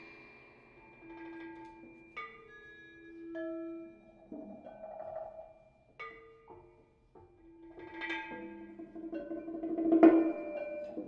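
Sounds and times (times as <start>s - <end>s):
mallet percussion ensemble: 7.8s - 11.0s.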